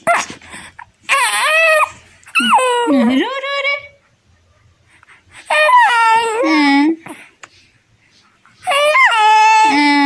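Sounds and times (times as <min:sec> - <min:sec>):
infant squealing: 0:01.1 - 0:03.0, 0:05.5 - 0:06.6, 0:08.6 - 0:10.0.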